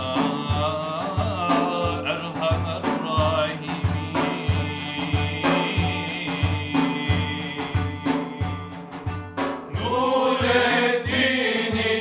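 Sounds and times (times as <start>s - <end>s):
low rhythmic pulse: 0.0s - 12.0s.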